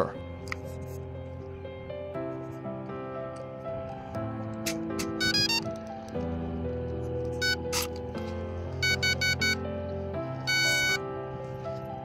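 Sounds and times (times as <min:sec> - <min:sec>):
background music: 0:00.0 - 0:12.0
electronic beeps: 0:05.2 - 0:05.6, 0:07.4 - 0:07.6, 0:08.8 - 0:09.6, 0:10.5 - 0:11.0.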